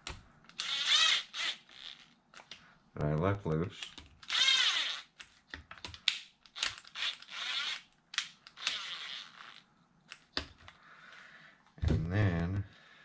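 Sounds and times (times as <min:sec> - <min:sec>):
screwdriver and plastic clicks: 0:00.0 - 0:10.8.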